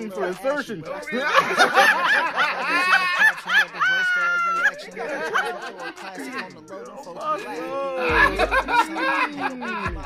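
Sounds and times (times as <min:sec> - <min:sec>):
person laughing hard: 0:01.1 - 0:06.6, 0:07.4 - 0:10.0.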